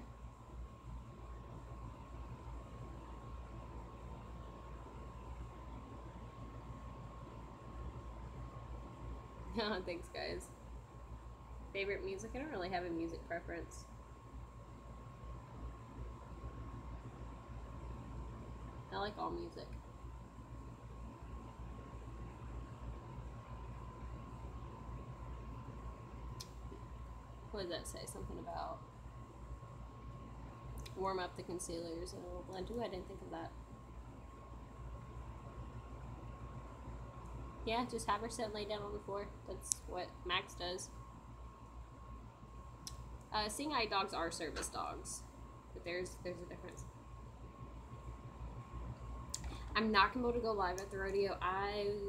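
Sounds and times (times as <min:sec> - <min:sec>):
faint high whine: 0:00.0 - 0:52.0
low hum: 0:00.0 - 0:52.0.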